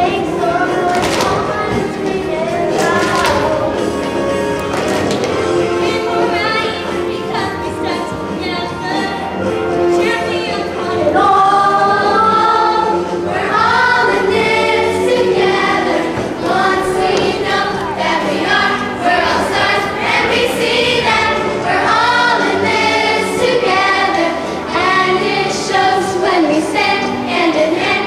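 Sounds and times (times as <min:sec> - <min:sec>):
musical accompaniment: 0:00.0 - 0:28.0
young voices singing in chorus: 0:00.0 - 0:28.0.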